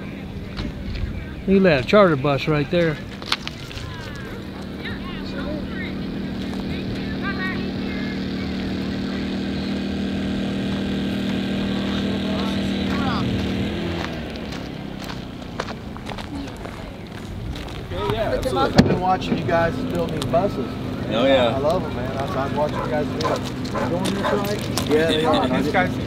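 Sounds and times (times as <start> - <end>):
distant voices: 0.0 - 26.0
engine running: 0.0 - 26.0.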